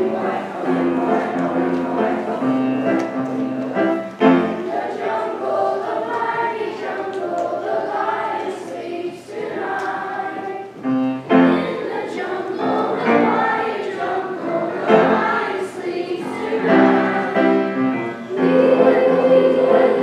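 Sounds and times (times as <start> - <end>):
upright piano: 0.0 - 6.8, 10.8 - 20.0
children's choir singing: 0.0 - 20.0.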